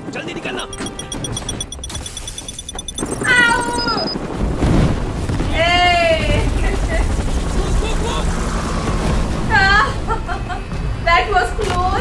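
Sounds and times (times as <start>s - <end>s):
helicopter rotor and engine rumble: 0.0s - 4.6s, 6.0s - 11.6s.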